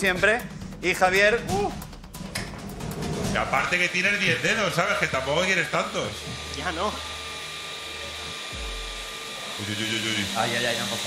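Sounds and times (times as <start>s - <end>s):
circular saw running: 3.3s - 11.0s.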